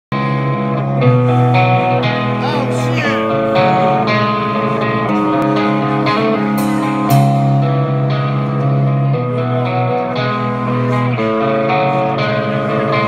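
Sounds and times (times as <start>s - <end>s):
electric guitar chords: 0.1s - 13.0s
rock band playing live: 0.2s - 13.0s
cymbal hits: 6.6s - 7.9s.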